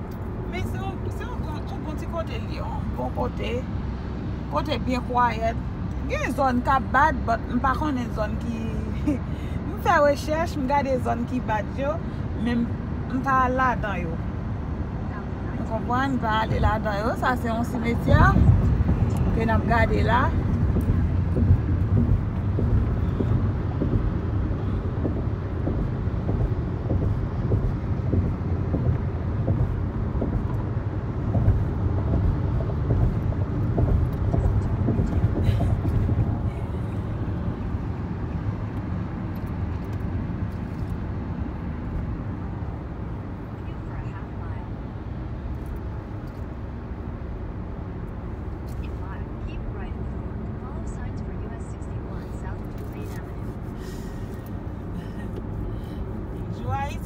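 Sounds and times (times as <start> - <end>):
car road rumble: 0.0 - 57.0.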